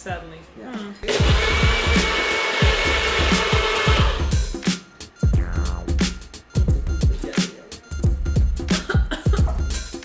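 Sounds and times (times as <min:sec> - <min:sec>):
music with thumping beat: 0:01.0 - 0:10.0
personal blender running: 0:01.1 - 0:04.3.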